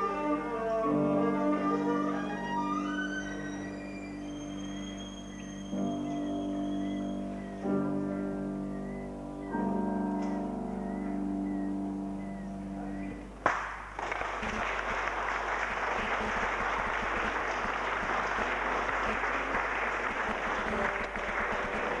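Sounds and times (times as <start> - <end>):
audience applause: 13.5 - 22.0.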